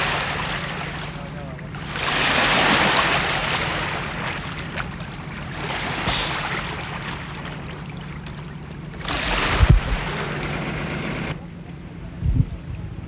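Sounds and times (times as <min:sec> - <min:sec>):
wind buffeting microphone: 0:09.3 - 0:11.0, 0:12.1 - 0:13.0.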